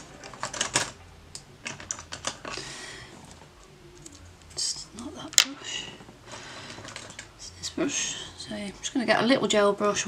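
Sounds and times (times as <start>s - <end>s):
plastic items clicking on desk: 0.0s - 1.0s, 1.6s - 2.6s, 6.7s - 7.3s.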